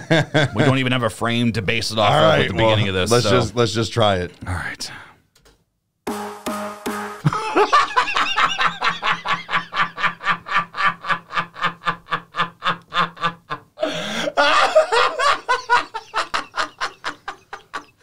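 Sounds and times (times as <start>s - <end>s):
men laughing hard: 0.0s - 0.8s, 7.2s - 18.0s.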